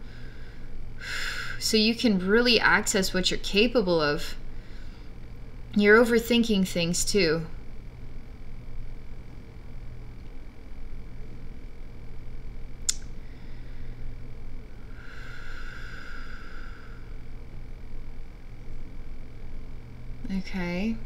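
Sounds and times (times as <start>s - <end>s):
steady low hum: 0.0s - 21.0s
sharp click: 12.9s - 13.1s.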